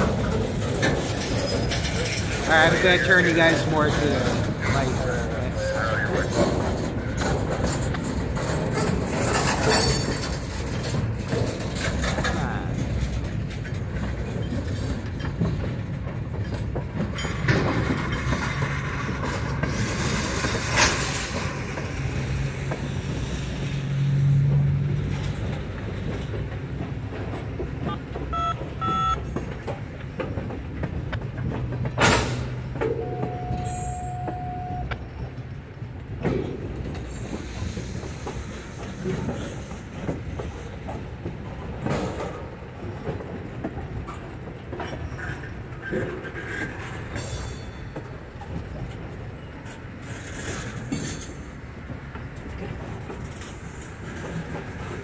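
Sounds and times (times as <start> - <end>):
freight train rolling past: 0.0 - 55.0
wheel squeal: 4.2 - 7.8, 32.8 - 35.2.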